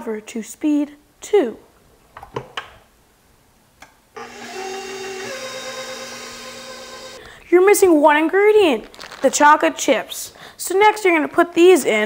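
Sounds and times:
stand mixer motor whine: 4.2s - 7.2s.

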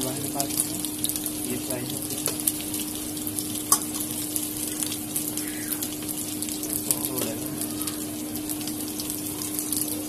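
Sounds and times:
food sizzling in hot oil: 0.0s - 10.0s
steady hum: 0.0s - 10.0s.

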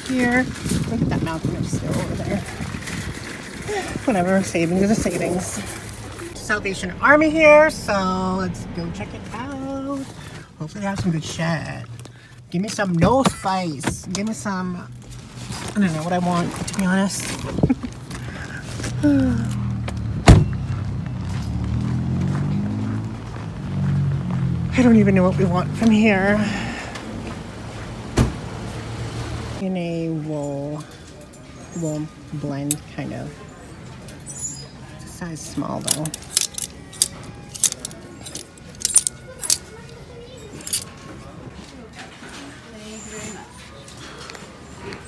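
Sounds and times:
low steady hum: 5.6s - 20.5s
car door shutting: 20.2s - 20.6s, 28.1s - 28.4s
hangers clacking on metal rack: 35.8s - 39.6s, 40.5s - 40.9s.

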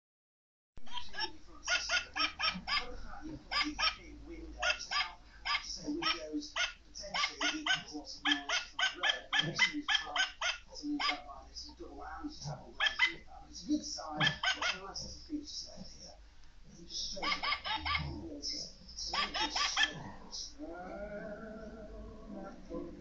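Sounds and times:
toy dog barking and yipping: 4.6s - 11.2s, 12.8s - 13.2s, 17.2s - 18.1s, 19.2s - 20.0s.

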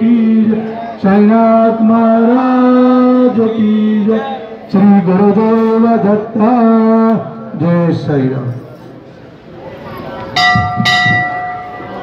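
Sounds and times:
temple bell ringing: 10.3s - 12.0s.

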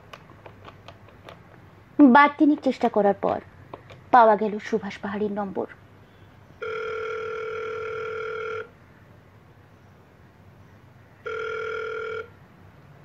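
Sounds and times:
telephone ringing tone: 6.6s - 8.8s, 11.2s - 12.4s.

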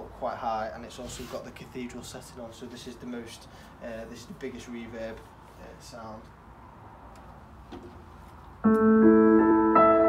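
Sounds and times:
piano chords with heavy reverb: 8.6s - 10.0s.

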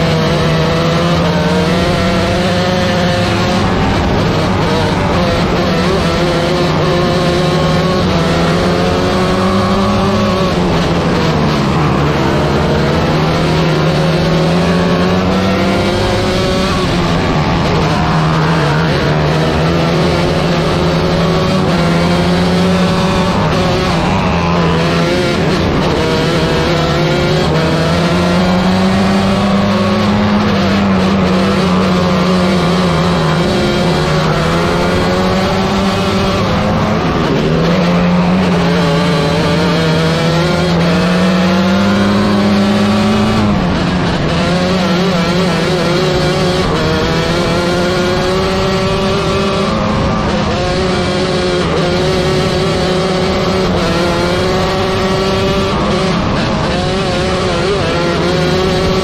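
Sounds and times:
race car engine at high revs: 0.0s - 59.0s.

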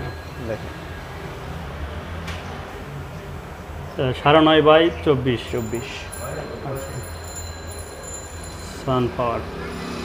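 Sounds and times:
man speaking: 4.0s - 7.1s.

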